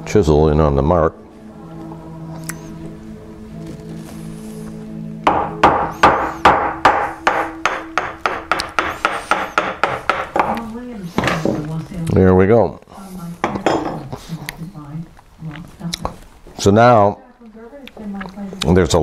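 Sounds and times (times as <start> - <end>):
mallet tapping chisel: 5.3 - 10.6.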